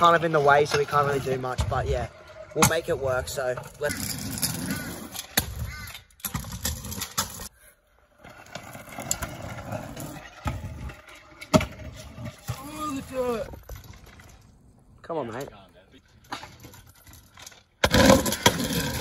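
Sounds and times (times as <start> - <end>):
scooter wheels clattering on concrete: 0.0 - 14.6, 15.2 - 19.0.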